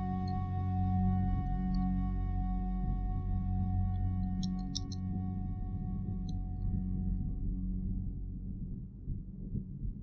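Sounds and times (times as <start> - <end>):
low room tone rumble: 0.0 - 10.0.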